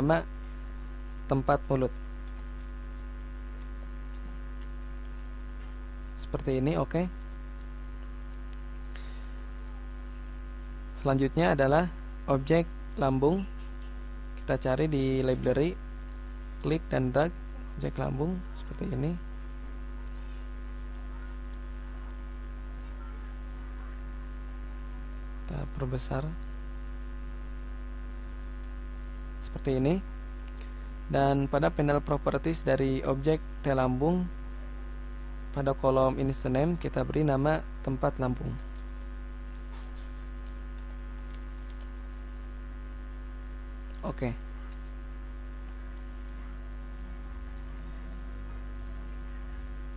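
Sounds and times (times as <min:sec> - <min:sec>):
electrical mains hum: 0:00.0 - 0:49.9.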